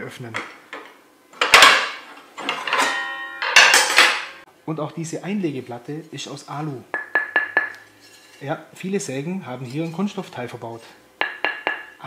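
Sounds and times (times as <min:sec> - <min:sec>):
metal scrape: 0:07.8 - 0:08.5.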